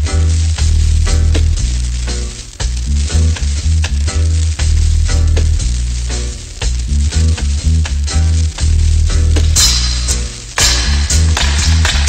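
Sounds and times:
record surface crackle and hiss: 0.0s - 12.0s
reggae dub music: 0.0s - 12.0s.

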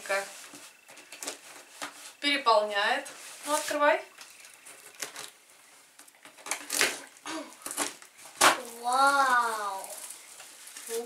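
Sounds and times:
packing tape ripping: 4.7s - 5.4s, 6.2s - 11.0s.

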